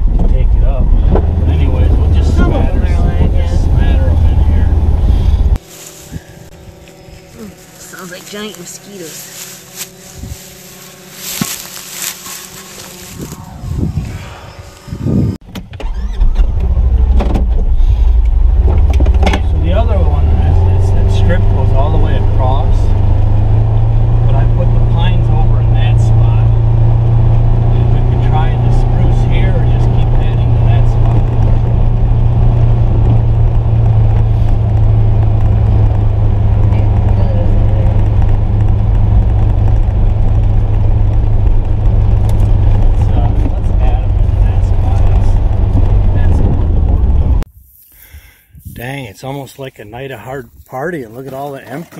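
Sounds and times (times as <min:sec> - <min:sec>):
low engine drone inside cab: 0:00.0 - 0:47.5.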